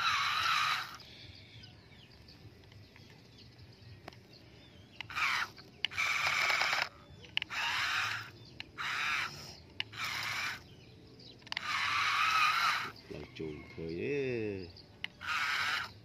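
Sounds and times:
toy truck electric motor whirring: 0.0s - 1.1s, 5.0s - 10.8s, 11.4s - 13.0s, 15.0s - 16.0s.

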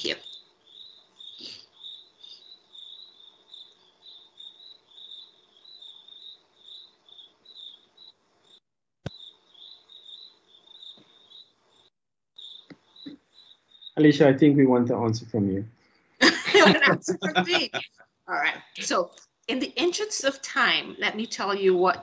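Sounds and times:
insect chirping: 0.0s - 14.1s.

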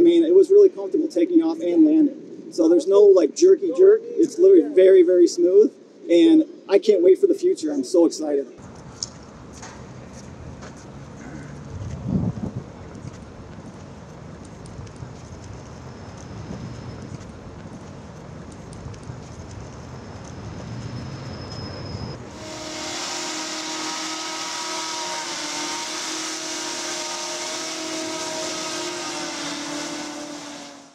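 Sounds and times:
hoverbike propellers droning: 8.6s - 30.9s.

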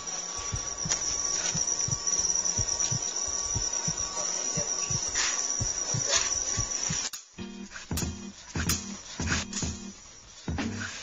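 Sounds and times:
high-pitched insect trill: 0.0s - 11.0s
music with low beat: 0.3s - 11.0s.

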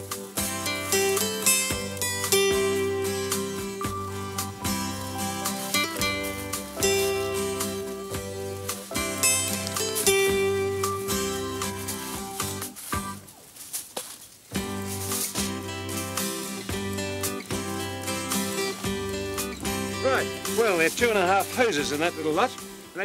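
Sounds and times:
plucked guitar music: 0.0s - 13.4s, 14.6s - 23.0s.

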